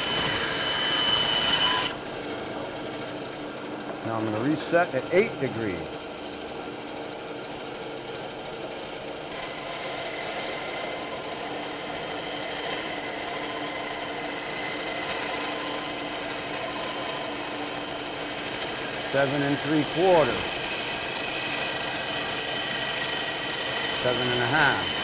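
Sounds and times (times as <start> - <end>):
bandsaw cutting wood: 0.0 - 2.0, 9.3 - 25.0.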